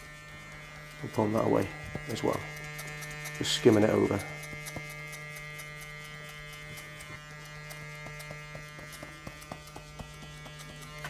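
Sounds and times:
faint irregular ticks: 0:00.0 - 0:11.0
hair clippers humming: 0:00.0 - 0:11.0.

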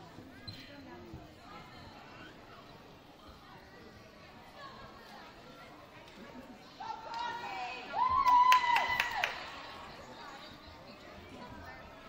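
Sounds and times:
faint chatter of voices: 0:00.0 - 0:12.0.

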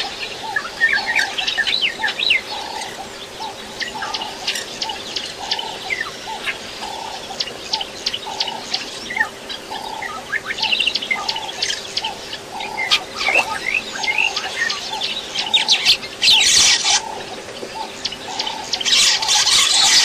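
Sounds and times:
birds chirping and trilling: 0:00.0 - 0:20.0
low repeating bird call: 0:00.0 - 0:20.0.

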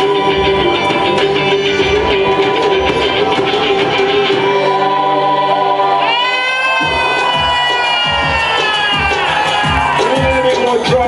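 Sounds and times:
drum strokes: 0:00.0 - 0:11.0
world fusion band playing: 0:00.0 - 0:11.0.

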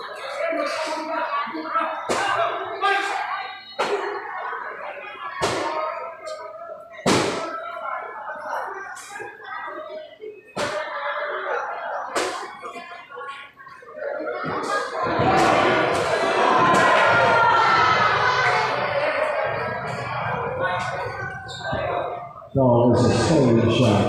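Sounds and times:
people shouting and talking: 0:00.0 - 0:24.0.

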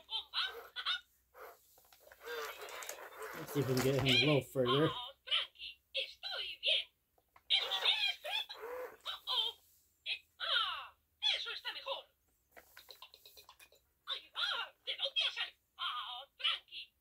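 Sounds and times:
toy speaking in cartoon voice: 0:00.0 - 0:01.1, 0:02.3 - 0:12.2, 0:14.0 - 0:17.0
toy giggles: 0:00.0 - 0:01.6, 0:07.5 - 0:10.9.

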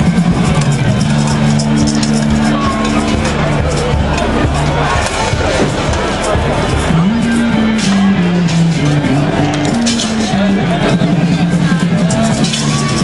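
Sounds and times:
crowd chatter: 0:00.0 - 0:13.0
live street music: 0:00.0 - 0:13.0.

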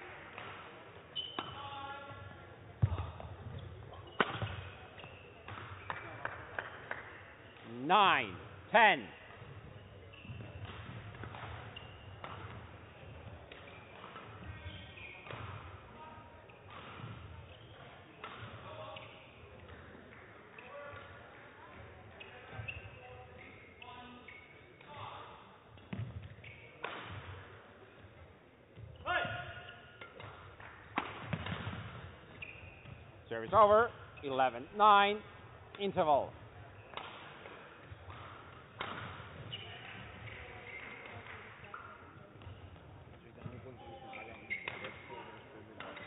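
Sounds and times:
rackets hitting shuttlecock: 0:00.0 - 0:01.6, 0:02.8 - 0:07.8, 0:09.3 - 0:15.8, 0:16.5 - 0:21.2, 0:25.7 - 0:27.6, 0:28.8 - 0:34.3, 0:35.1 - 0:45.1, 0:45.7 - 0:46.0
shoes squeaking on court: 0:00.4 - 0:07.9, 0:09.1 - 0:27.4, 0:28.8 - 0:46.0.

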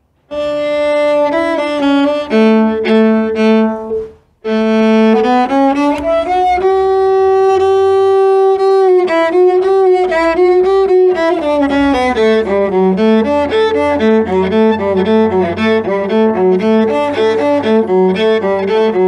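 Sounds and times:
solo cello melody: 0:00.0 - 0:19.0.

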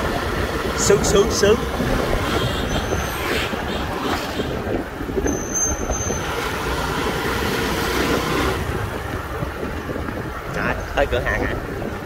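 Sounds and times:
motorcycle engine cruising: 0:00.0 - 0:12.0
wind buffeting microphone: 0:00.0 - 0:12.0.

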